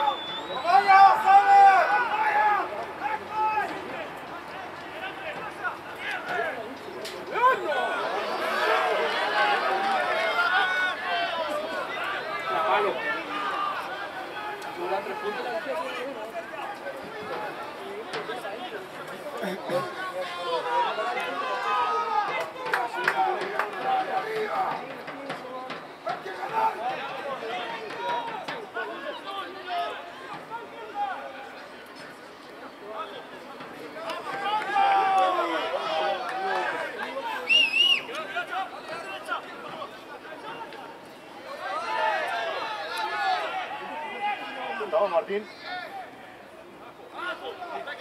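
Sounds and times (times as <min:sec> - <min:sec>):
warbling referee's whistle: 0:00.0 - 0:00.8
voices talking over one another: 0:00.0 - 0:48.0.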